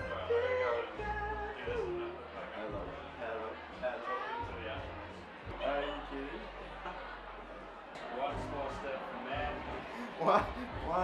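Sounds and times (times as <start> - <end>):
indistinct voices talking: 9.6 - 11.0.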